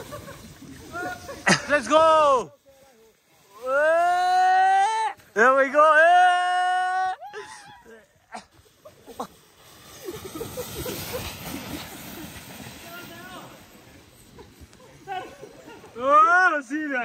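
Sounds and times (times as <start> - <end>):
sled scraping on snow: 0.0 - 6.3, 7.3 - 17.0.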